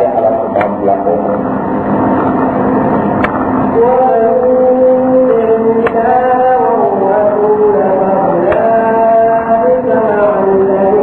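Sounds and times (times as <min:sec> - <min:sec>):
man chanting: 0:00.0 - 0:01.4, 0:03.8 - 0:11.0
dense noisy hum: 0:00.0 - 0:11.0.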